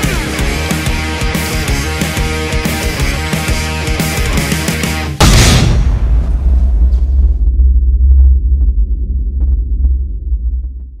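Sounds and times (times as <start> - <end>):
low throbbing drone: 6.4 - 11.0.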